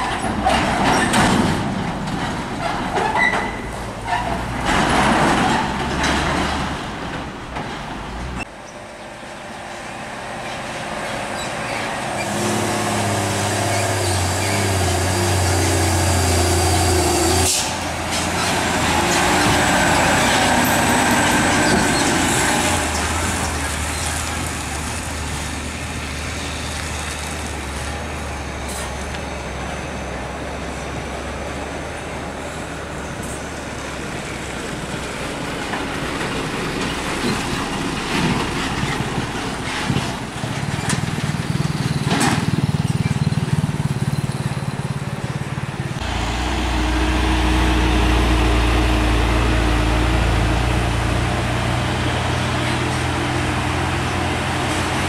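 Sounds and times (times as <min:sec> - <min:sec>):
diesel truck engines passing: 0:00.0 - 0:55.0.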